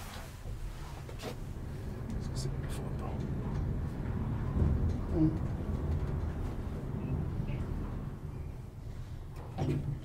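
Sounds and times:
elevator hum and rumble: 0.0 - 10.0.

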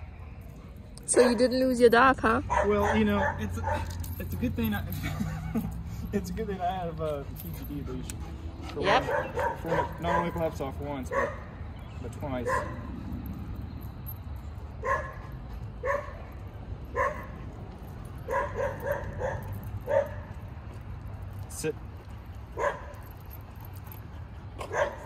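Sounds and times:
dog barking: 2.5 - 4.0, 8.8 - 10.5, 11.1 - 11.5, 12.4 - 12.9, 14.8 - 15.2, 15.8 - 16.3, 16.9 - 17.4, 18.2 - 20.4, 22.6 - 23.0, 24.6 - 25.0.

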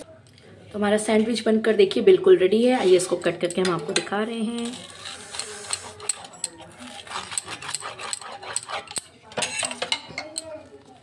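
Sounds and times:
pizza cutter crunching toasted bread: 4.6 - 9.2.

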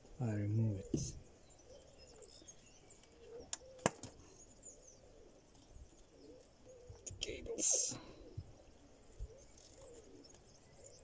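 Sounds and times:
birds cooing and chirping: 0.0 - 11.0.

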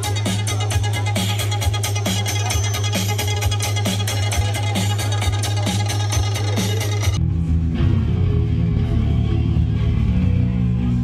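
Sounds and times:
heavy distorted guitar and bass: 3.4 - 11.0.

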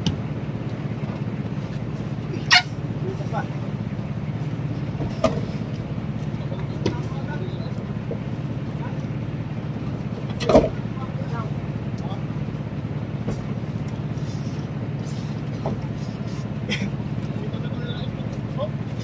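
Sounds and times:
low engine hum: 0.0 - 19.0.

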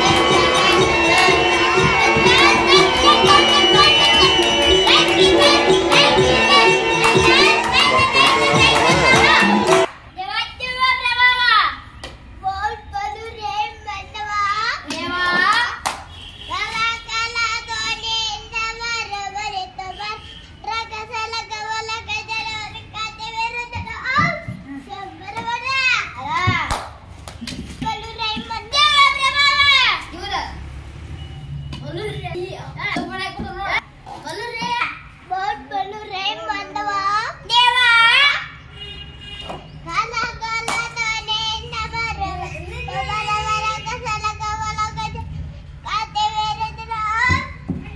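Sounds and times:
boy singing unaccompanied: 0.0 - 9.9, 12.4 - 15.5, 16.5 - 26.6, 39.8 - 47.9
rising and falling vocal calls: 0.0 - 9.9.

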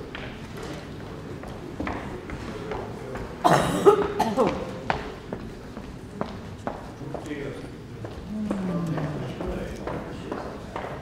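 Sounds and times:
person coughing: 3.4 - 4.7
low voices: 7.4 - 10.7.

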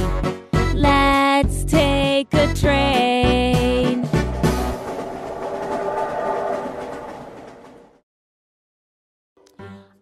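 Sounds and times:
children's song: 0.0 - 4.3
train passing on rails: 3.6 - 8.0.

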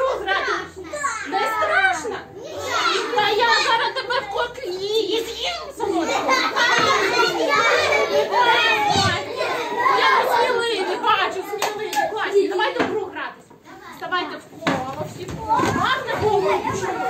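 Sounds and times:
young children talking and calling: 0.0 - 17.0.

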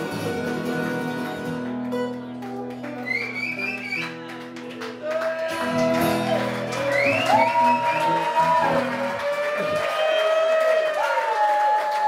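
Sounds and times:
acoustic guitars playing: 0.0 - 9.8.

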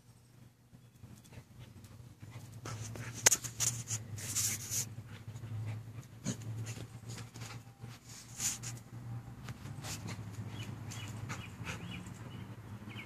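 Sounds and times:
dogs panting and huffing: 1.0 - 13.0
dogs scuffling: 1.6 - 12.4.

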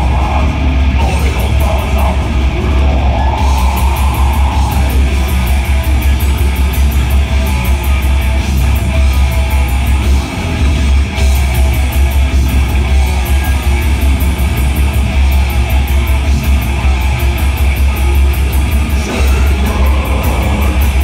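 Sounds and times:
heavy metal band playing: 0.0 - 21.0.

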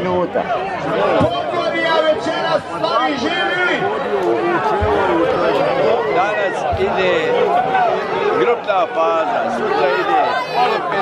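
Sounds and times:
men shouting and cheering: 0.0 - 11.0.

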